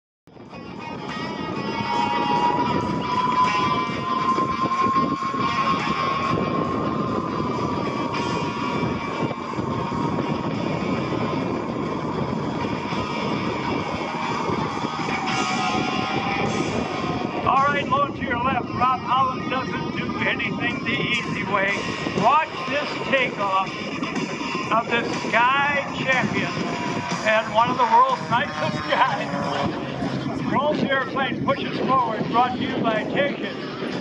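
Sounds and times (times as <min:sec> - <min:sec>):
music: 0:00.3 - 0:34.0
propeller plane engine drone: 0:00.4 - 0:34.0.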